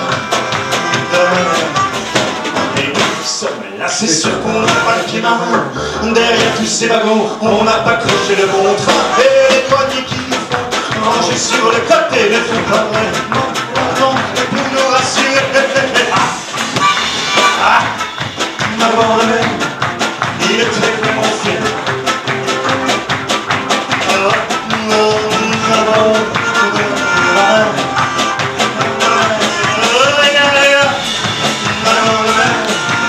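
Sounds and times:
man singing: 0:00.0 - 0:23.1, 0:23.7 - 0:33.0.

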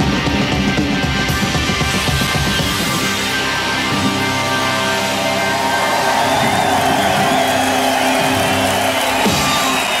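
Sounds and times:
rock band closing notes: 0:00.0 - 0:10.0
crowd cheering: 0:03.3 - 0:10.0.

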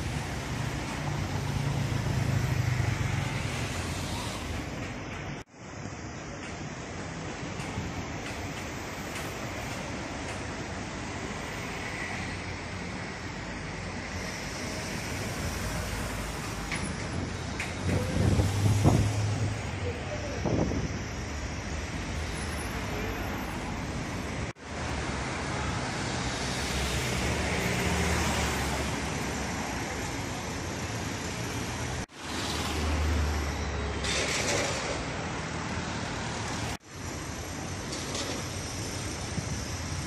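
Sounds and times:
city street traffic: 0:00.0 - 0:40.0.

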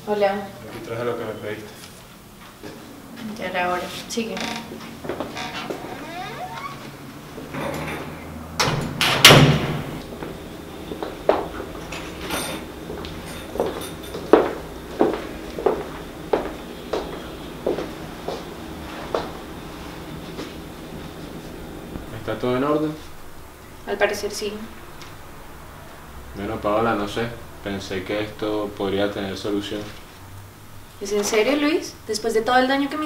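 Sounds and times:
footsteps: 0:01.7 - 0:07.0
door shutting with a thud: 0:08.6 - 0:09.9.

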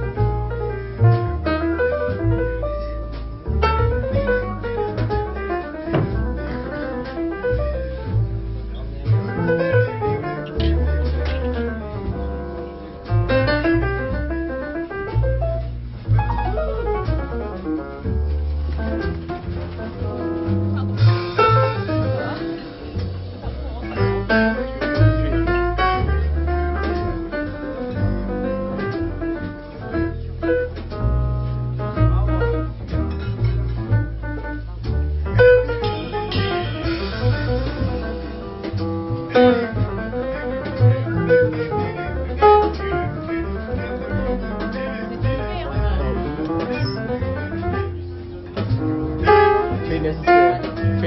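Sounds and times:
drum kit played lightly: 0:00.0 - 0:51.0
grand piano: 0:00.0 - 0:51.0
plucked double bass: 0:00.0 - 0:51.0.

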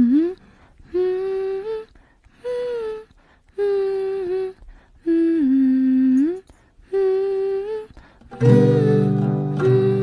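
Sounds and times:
person humming slow tune: 0:00.0 - 0:10.0.

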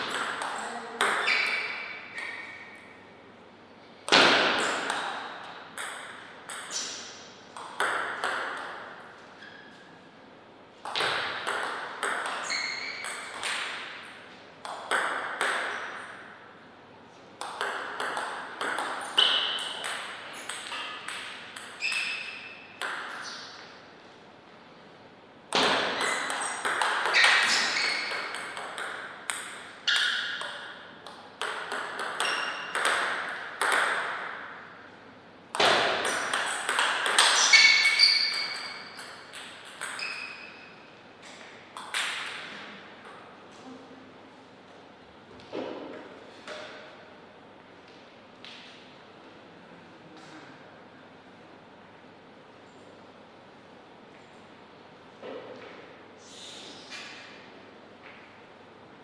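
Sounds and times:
table tennis ball hitting paddles: 0:00.0 - 0:02.8, 0:04.0 - 0:09.6, 0:10.8 - 0:16.3, 0:17.4 - 0:23.8, 0:25.5 - 0:34.7, 0:35.5 - 0:40.6, 0:41.2 - 0:43.3.

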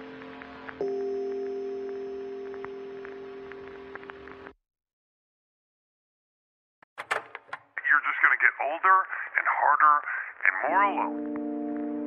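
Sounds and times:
thin lo-fi voice sample: 0:07.8 - 0:11.2
sustained chord: 0:11.1 - 0:12.0.

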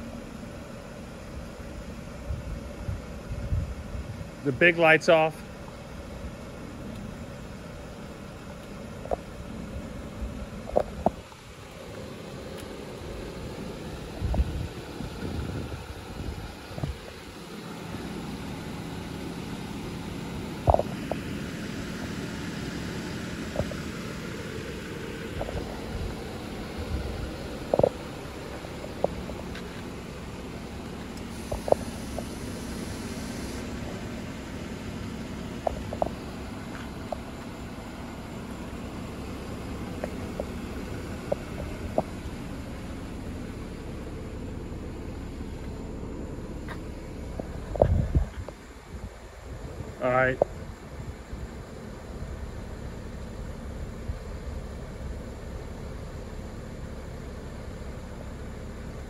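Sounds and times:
low steady rumble: 0:00.0 - 0:59.0.

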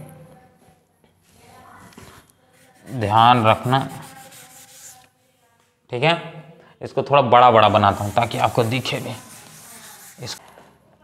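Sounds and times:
rubbing on writing board: 0:02.5 - 0:05.0, 0:07.7 - 0:10.4.

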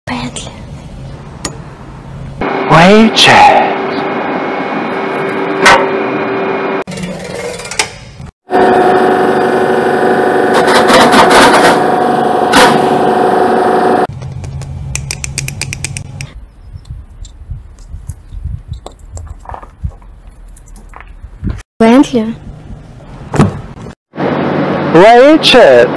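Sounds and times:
quick run of clicks: 0:14.1 - 0:19.7.

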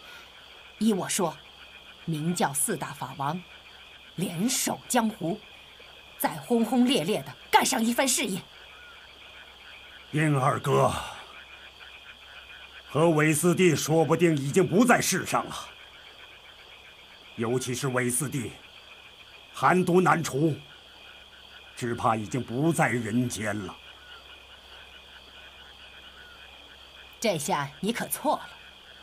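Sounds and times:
frogs calling: 0:00.0 - 0:29.0
high insect drone: 0:00.0 - 0:29.0.

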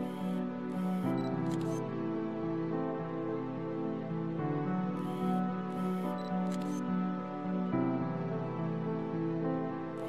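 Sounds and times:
camera shutter clicking and whirring: 0:00.0 - 0:01.8, 0:05.0 - 0:06.8
slow background music: 0:00.0 - 0:10.0.

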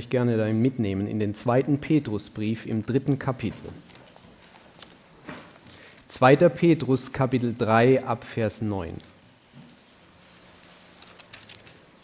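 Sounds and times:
soft handling noises: 0:02.6 - 0:06.1, 0:08.8 - 0:12.0
pages rustling: 0:02.7 - 0:06.0, 0:08.8 - 0:12.0.

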